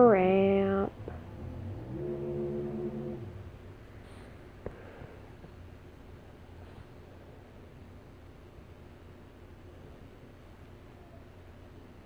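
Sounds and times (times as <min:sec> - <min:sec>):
person humming low note: 0:01.2 - 0:03.6.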